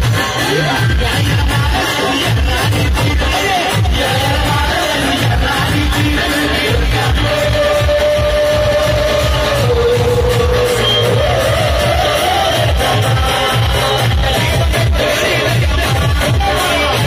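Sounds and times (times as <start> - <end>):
loud steady drum beat: 0.0 - 17.0.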